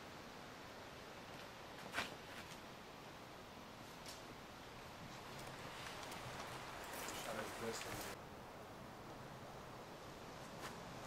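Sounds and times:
faint outdoor background noise: 0.0s - 11.0s.

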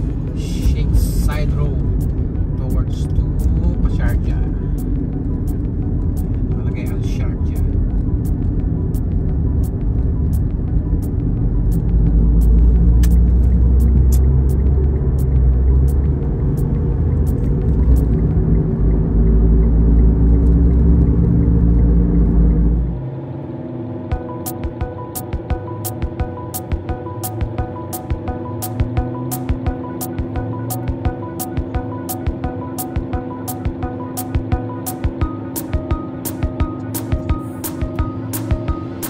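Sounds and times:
car road and engine rumble: 0.0s - 39.0s.

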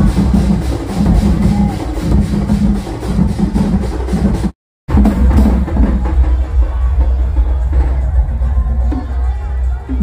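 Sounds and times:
large drums beaten hard: 0.0s - 9.3s.

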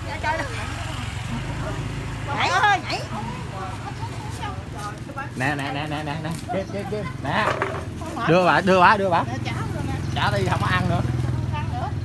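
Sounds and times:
faint voices: 0.0s - 12.0s
vehicle engine idling: 0.0s - 12.0s.

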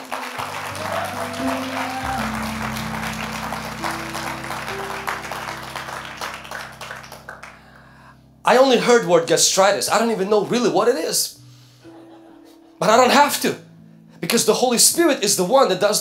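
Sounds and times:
congregation applauding: 0.0s - 7.9s
sustained keyboard chords: 0.0s - 11.3s, 11.9s - 16.0s.

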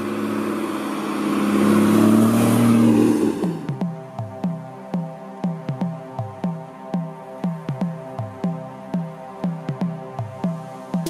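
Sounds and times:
car engine driving past: 0.0s - 3.8s
music: 0.0s - 11.0s.

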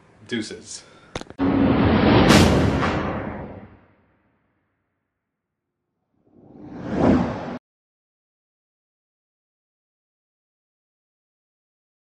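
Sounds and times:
whoosh sound effect: 6.4s - 7.6s.

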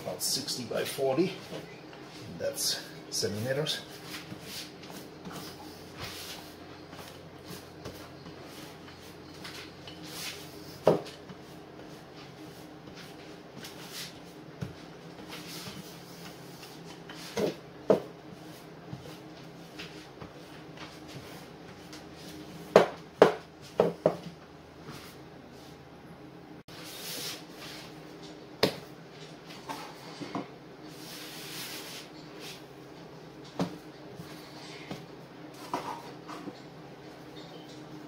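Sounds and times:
rolling pin rolling dough: 1.4s - 25.7s
rolling pin knocking on counter: 22.7s - 24.2s.

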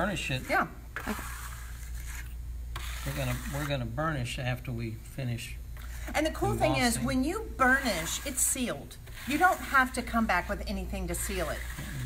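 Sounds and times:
metal trowel scraping wet plaster: 0.2s - 3.9s, 6.5s - 12.0s.

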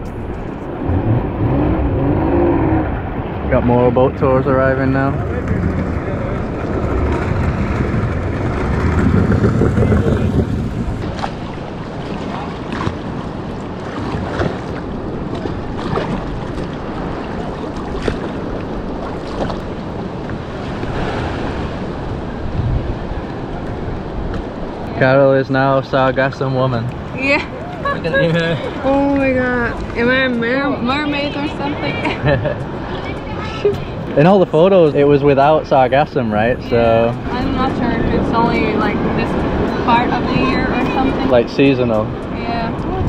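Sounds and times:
wind rumble: 0.0s - 43.0s
seawater sloshing and splashing: 5.0s - 25.1s.

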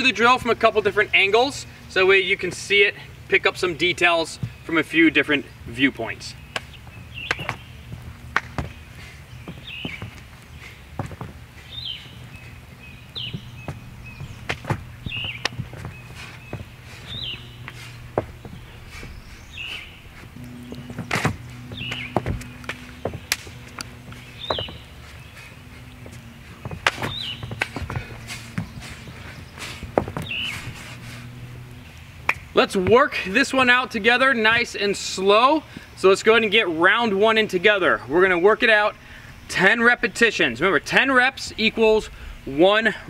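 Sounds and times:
background music with low drone: 6.9s - 32.5s
sharp clicks and thumps: 20.3s - 24.7s.

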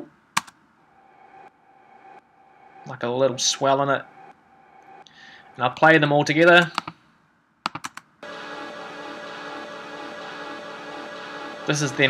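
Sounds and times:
pad-like atmosphere texture: 0.0s - 6.5s, 8.2s - 12.0s
mouse clicks: 6.6s - 7.0s, 7.7s - 8.1s.

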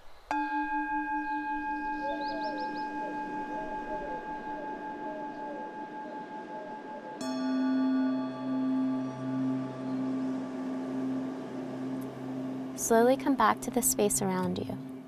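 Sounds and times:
singing bowl ringing: 0.3s - 15.0s
faint birds chirping: 1.2s - 7.2s.

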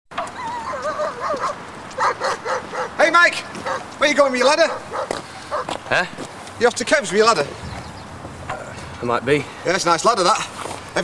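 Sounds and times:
high-pitched animal cries: 0.2s - 1.4s.

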